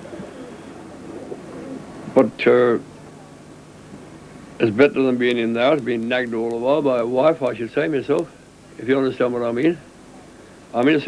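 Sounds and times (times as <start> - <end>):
pigeons cooing: 0.0 - 5.8.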